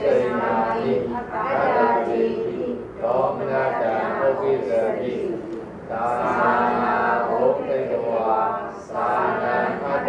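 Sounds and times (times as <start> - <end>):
person chanting: 0.0 - 10.0.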